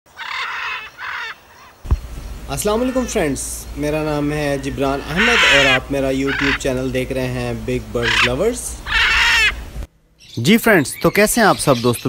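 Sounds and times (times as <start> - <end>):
harsh bird calls: 0.1 - 12.0
short low thump: 1.8 - 2.2.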